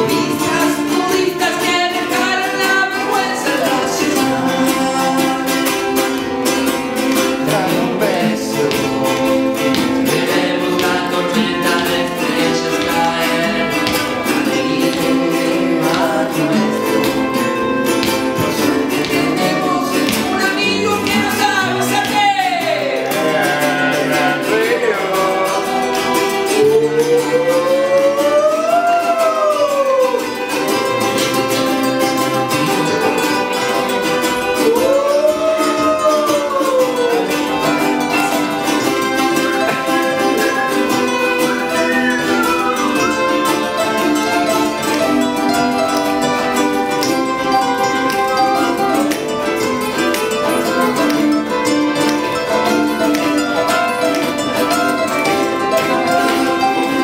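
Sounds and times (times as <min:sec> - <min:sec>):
sliding melody with long notes: 0:00.0 - 0:57.0
strummed acoustic guitars: 0:00.0 - 0:57.0
violin: 0:00.0 - 0:57.0.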